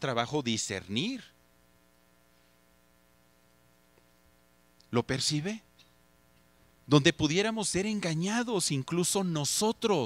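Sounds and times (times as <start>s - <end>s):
faint electrical hum: 0.0s - 10.0s
man's voice: 6.9s - 10.0s.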